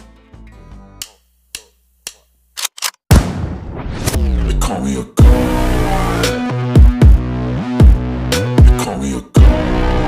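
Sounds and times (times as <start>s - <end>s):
music: 0.0s - 1.2s, 4.2s - 10.0s
sharp percussive clicks: 1.0s - 3.0s.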